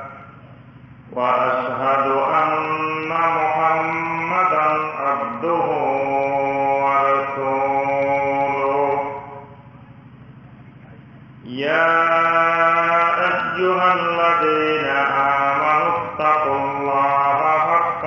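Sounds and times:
man chanting unaccompanied: 0:00.0 - 0:09.7, 0:10.3 - 0:18.0.

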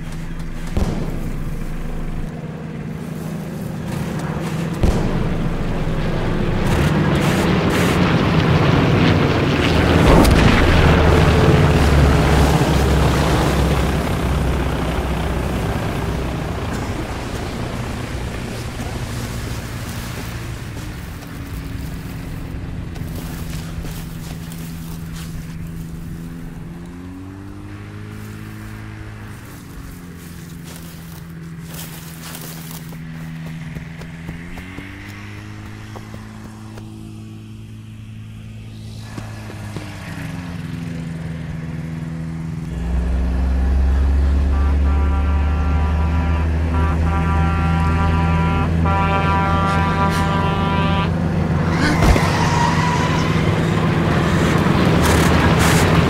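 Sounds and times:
propeller plane droning overhead: 0:00.0 - 0:56.0
truck engine rumble: 0:00.0 - 0:56.0
blaring horn: 0:42.7 - 0:53.8.

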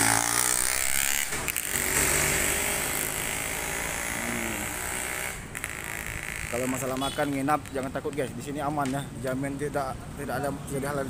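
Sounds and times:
small motorbike engine passing: 0:00.0 - 0:07.0.

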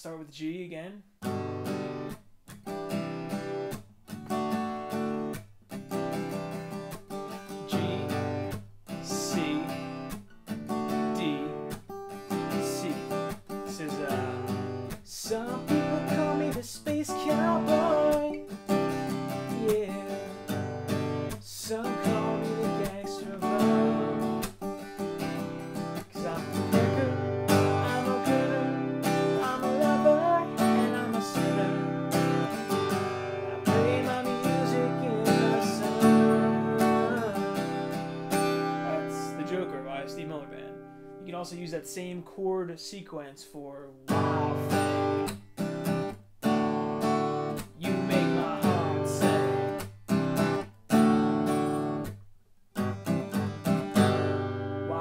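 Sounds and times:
acoustic guitar strumming: 0:01.2 - 0:42.4, 0:44.0 - 0:55.0.

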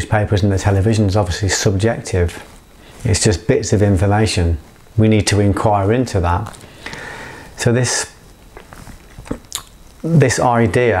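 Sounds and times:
breath noises: 0:02.6 - 0:03.1, 0:06.5 - 0:07.6
mouth clicks: 0:08.5 - 0:10.2.

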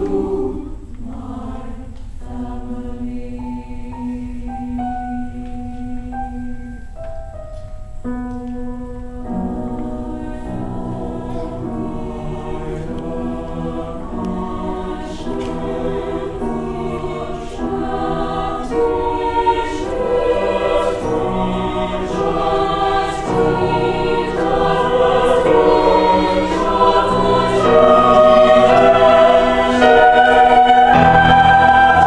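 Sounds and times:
mixed choir singing chords: 0:00.0 - 0:07.5, 0:08.9 - 0:32.0.

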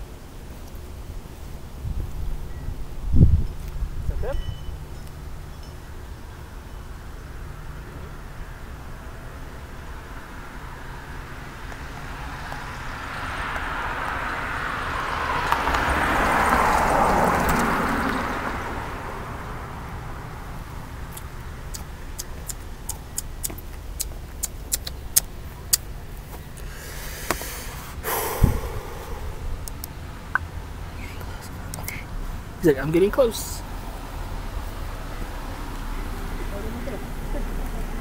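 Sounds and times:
car passing: 0:00.0 - 0:38.0.

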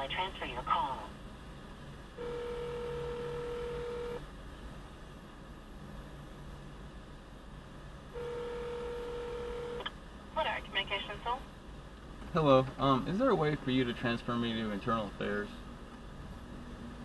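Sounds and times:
telephone ringback tone: 0:02.2 - 0:04.2, 0:08.2 - 0:09.8.

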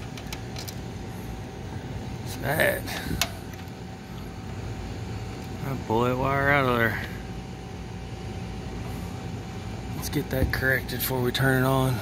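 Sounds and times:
faint constant whine: 0:00.0 - 0:12.0
steady running noise: 0:00.0 - 0:12.0.

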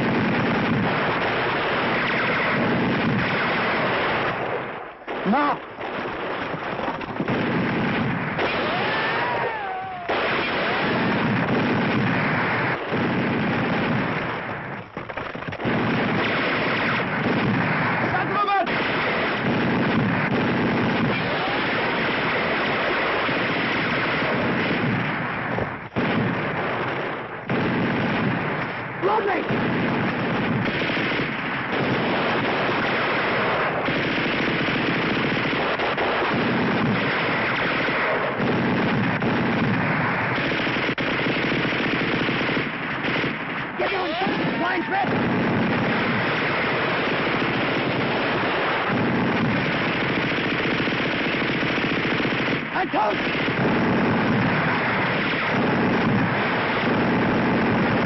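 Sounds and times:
machine-gun and rifle fire: 0:00.0 - 0:58.0.

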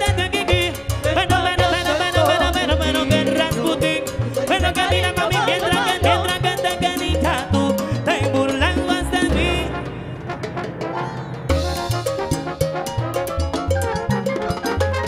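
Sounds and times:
live salsa band: 0:00.0 - 0:15.0.

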